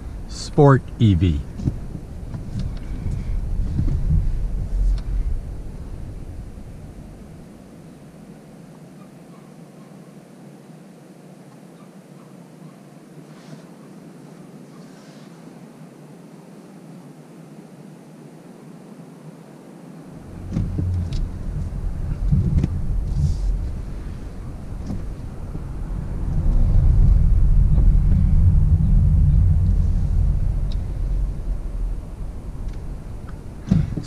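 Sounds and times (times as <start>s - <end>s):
low vehicle rumble: 0.0s - 8.2s, 20.1s - 34.0s.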